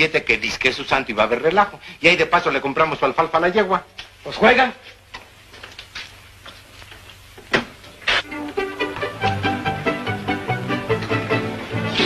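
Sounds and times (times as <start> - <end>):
film soundtrack hiss: 0.0 - 12.0
music: 8.2 - 12.0.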